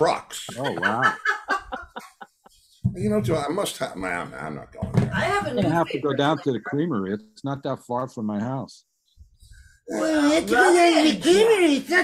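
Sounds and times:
person speaking: 0:00.0 - 0:01.3, 0:03.0 - 0:08.6
person laughing: 0:00.5 - 0:02.3.

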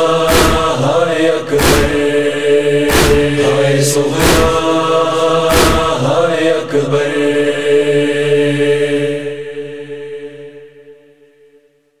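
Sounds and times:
voices singing long chord: 0:00.0 - 0:11.8.

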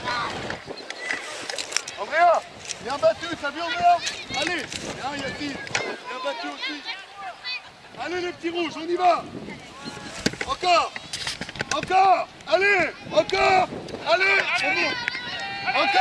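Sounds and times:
children shouting: 0:00.0 - 0:01.4, 0:05.1 - 0:07.9, 0:12.7 - 0:16.0.

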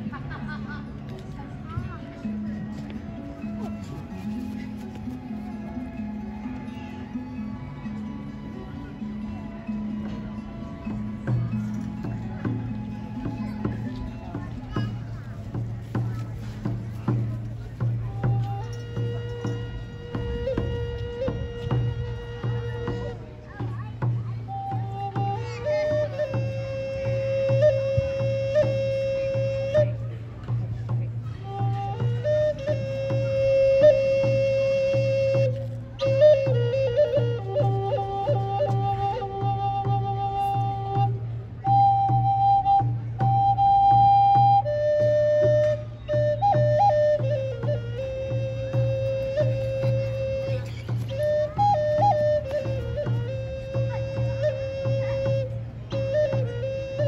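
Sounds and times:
flute playing slow melody: 0:02.2 - 0:15.0, 0:17.8 - 0:30.7, 0:31.3 - 0:57.0.

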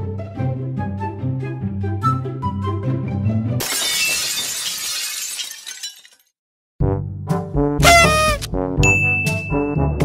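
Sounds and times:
brass music: 0:07.4 - 0:08.8.

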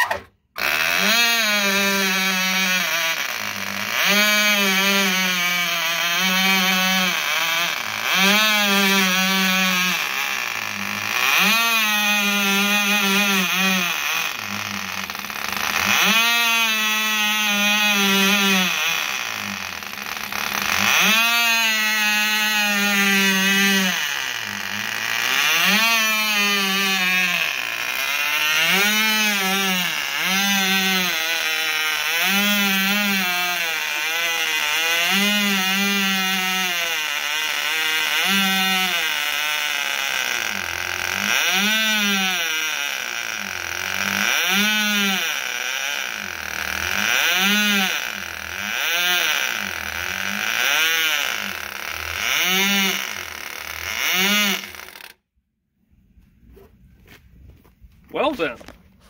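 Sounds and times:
model airplane engine running: 0:00.0 - 0:55.2.

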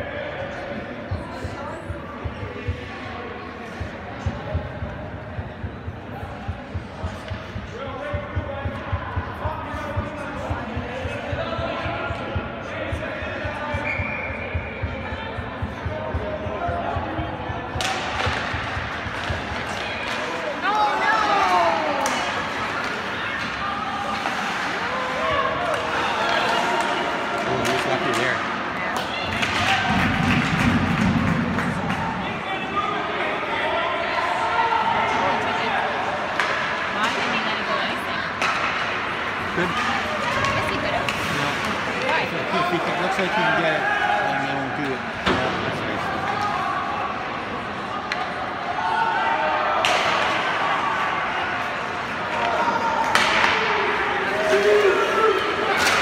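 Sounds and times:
spectators' voices echoing: 0:00.0 - 0:56.0
hockey sticks and puck clacking: 0:17.6 - 0:32.4, 0:36.1 - 0:43.6, 0:44.3 - 0:48.7, 0:49.7 - 0:56.0.

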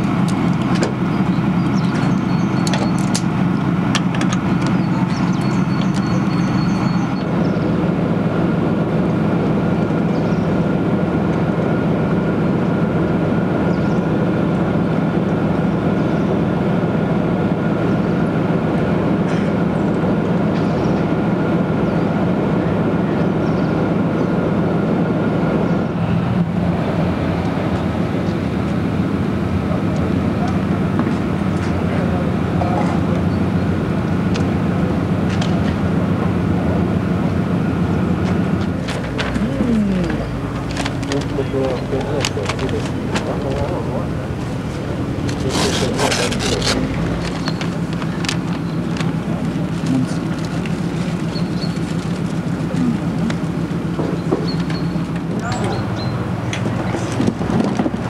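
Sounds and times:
diesel engines idling: 0:00.0 - 0:58.0
thin steady whine: 0:00.0 - 0:58.0.

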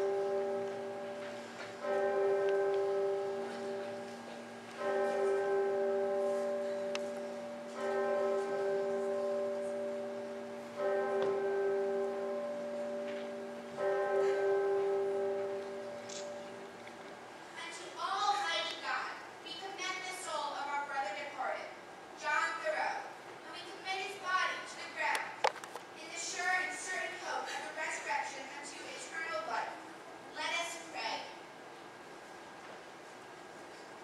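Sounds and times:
bell tolling slowly: 0:00.0 - 0:17.0.

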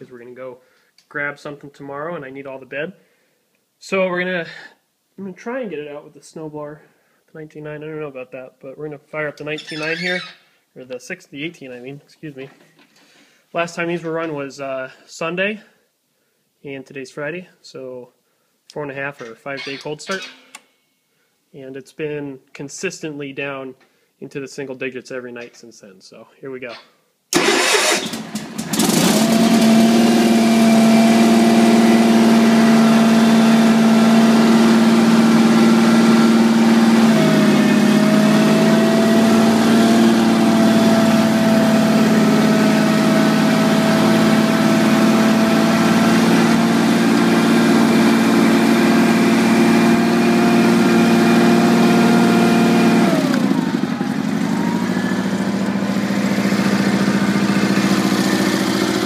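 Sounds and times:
garden tractor engine running: 0:27.4 - 0:59.0.

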